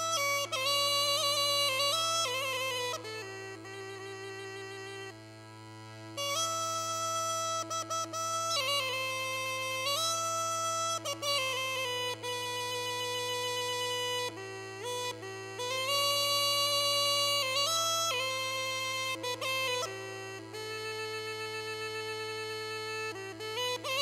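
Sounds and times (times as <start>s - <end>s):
bagpipe drone: 0.0s - 24.0s
bagpipe melody: 0.0s - 24.0s.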